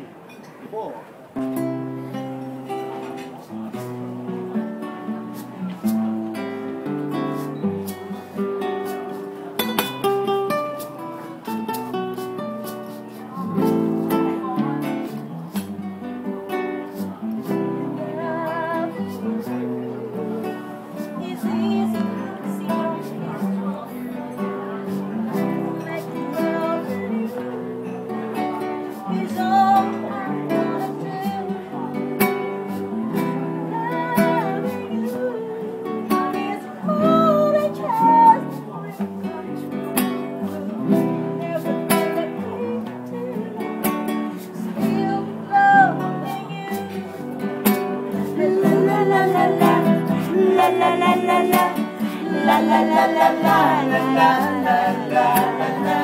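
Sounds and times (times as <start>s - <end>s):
acoustic guitar strumming: 1.4s - 56.0s
woman singing: 13.3s - 15.3s, 17.5s - 23.8s, 24.4s - 32.8s, 33.6s - 47.2s, 47.8s - 56.0s.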